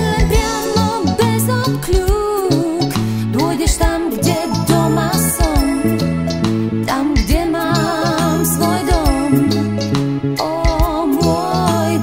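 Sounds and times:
pop song with vibrato melody: 0.0 - 12.0.

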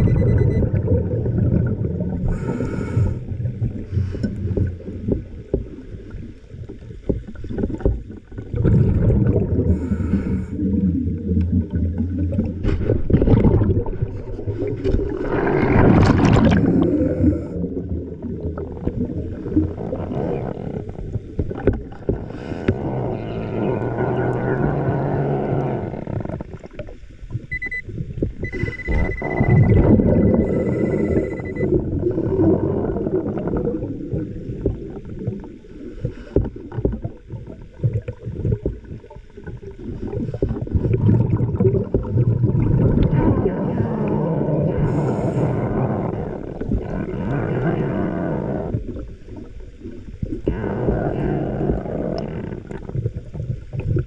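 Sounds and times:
exhaled air bubbles underwater: 0.0 - 54.0
thin high beep: 27.5 - 27.8, 28.4 - 31.8.

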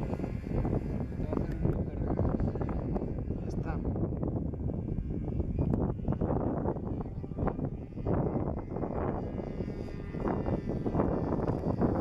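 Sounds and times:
gusty wind on microphone: 0.0 - 12.0
model airplane engine: 0.0 - 12.0.

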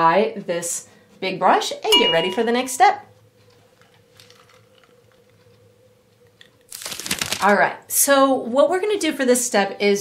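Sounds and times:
low steady hum: 0.0 - 6.7.

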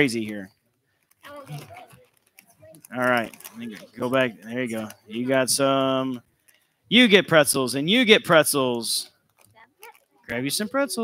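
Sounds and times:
snack bag crinkling: 0.9 - 5.4, 9.2 - 10.4.

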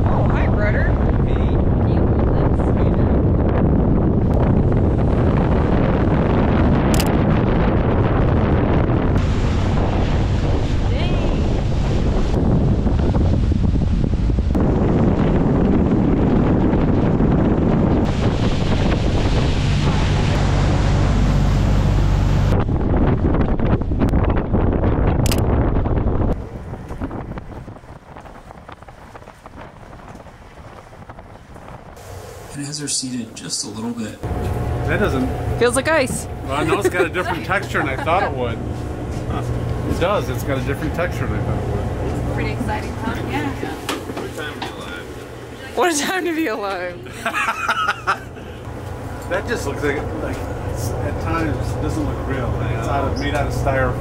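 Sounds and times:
wind rushing over microphone: 0.0 - 33.4, 34.2 - 54.0
boat engine rumble: 0.0 - 54.0
water: 0.0 - 54.0.

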